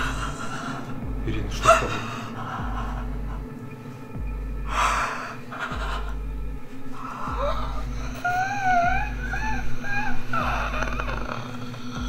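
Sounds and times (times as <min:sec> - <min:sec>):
high wavering whimpering cry: 0:00.0 - 0:03.8, 0:04.6 - 0:12.0
low steady hum: 0:00.0 - 0:12.0.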